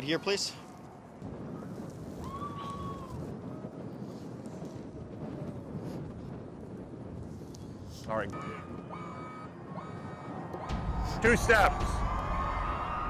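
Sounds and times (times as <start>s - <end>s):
wind rumble: 0.0s - 13.0s
distant city noise: 7.9s - 13.0s.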